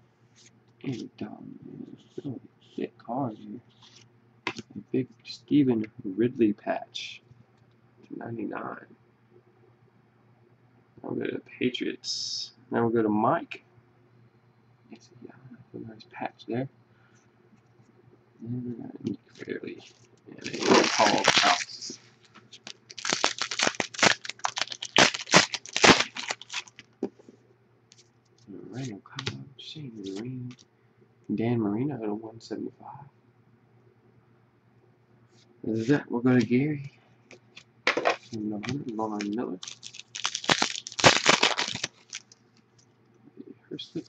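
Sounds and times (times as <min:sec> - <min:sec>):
foil wrapper tearing and crinkling: 0:20.4 - 0:26.9, 0:39.1 - 0:42.4.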